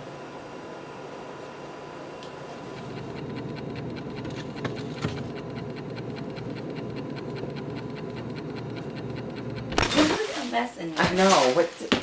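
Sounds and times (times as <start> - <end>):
refrigerator hum: 0.0 - 12.0.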